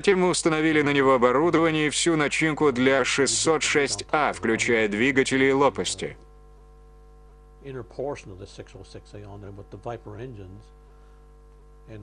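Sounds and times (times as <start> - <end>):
person speaking: 0.0 - 6.3
electrical hum: 0.0 - 12.0
faint steady tones: 0.0 - 12.0.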